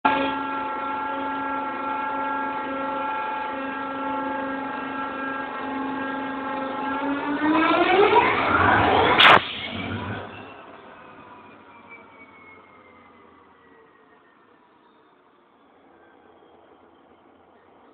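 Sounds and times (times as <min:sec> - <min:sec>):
locomotive droning: 0:00.0 - 0:17.9
sharp click: 0:09.2 - 0:09.7.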